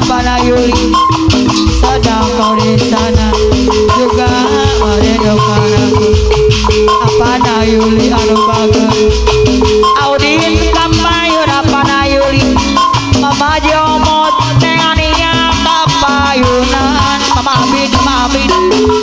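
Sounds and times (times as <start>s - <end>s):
live percussion band music: 0.0s - 19.0s.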